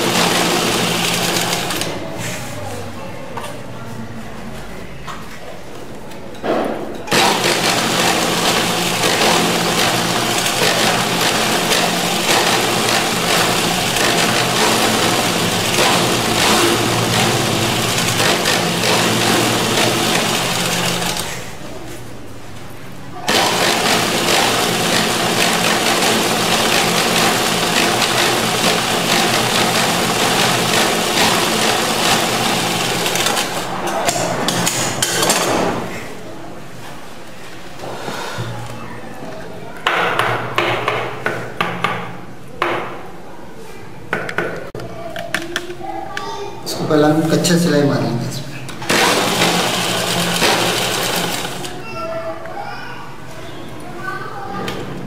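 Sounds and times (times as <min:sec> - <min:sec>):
sewing machine stitching: 0:00.0 - 0:02.0, 0:07.1 - 0:21.5, 0:23.3 - 0:34.8, 0:48.8 - 0:51.8.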